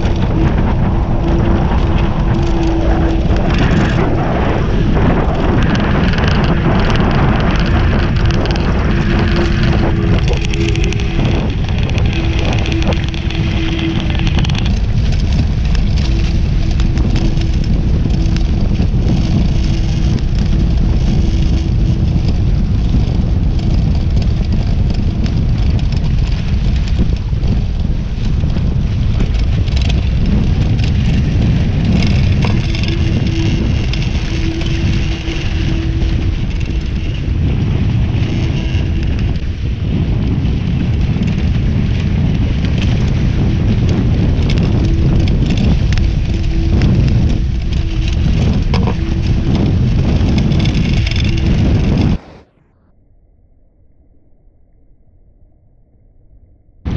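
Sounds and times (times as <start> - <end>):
water rushing along hulls: 0.0 - 52.6
wind buffeting microphone: 0.0 - 52.8.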